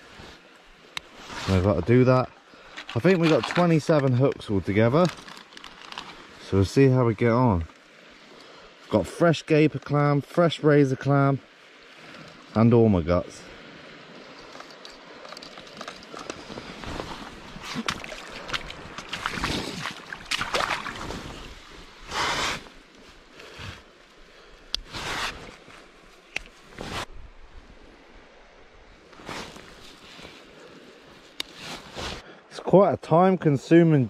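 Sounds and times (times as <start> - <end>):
rustling and splashing in water: 0.0 - 27.2, 29.0 - 32.2.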